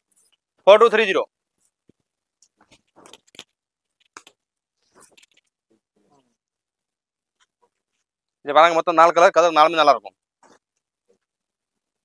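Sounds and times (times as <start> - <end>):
fabric rustling: 1.5 - 8.3.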